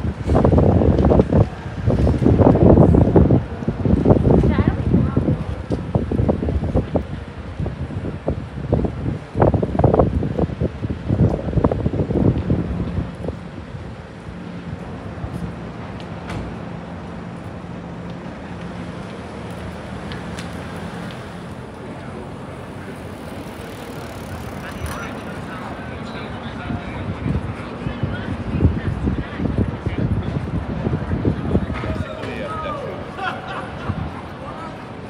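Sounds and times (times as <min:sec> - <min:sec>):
city street background: 0:00.0 - 0:35.0
wind buffeting microphone: 0:00.0 - 0:35.0.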